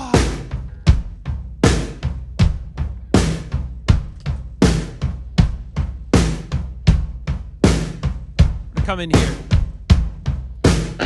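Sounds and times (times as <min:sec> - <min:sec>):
drum kit playing a beat: 0:00.0 - 0:11.0.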